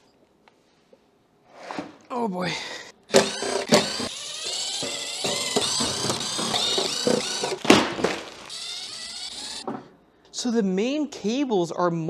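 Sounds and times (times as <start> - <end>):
cordless drill motor whine: 3.1 - 9.6.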